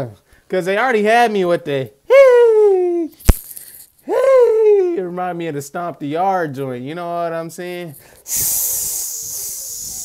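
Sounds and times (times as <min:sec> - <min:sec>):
man hissing through teeth: 0:08.0 - 0:10.0.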